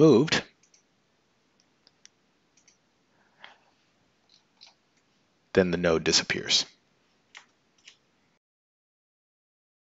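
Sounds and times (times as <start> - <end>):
computer mouse clicks: 0.6 - 0.9, 1.6 - 2.8, 7.3 - 8.0.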